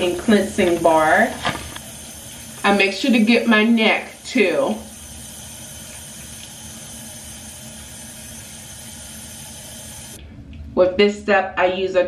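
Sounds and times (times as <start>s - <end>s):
tap water running into sink: 0.0s - 10.2s.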